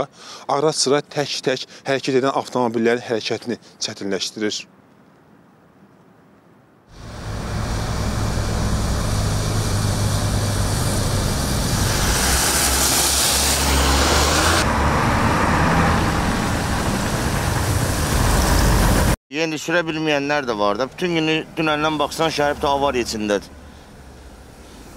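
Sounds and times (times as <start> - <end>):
cars passing on icy road: 6.9 - 19.2, 21.6 - 24.9.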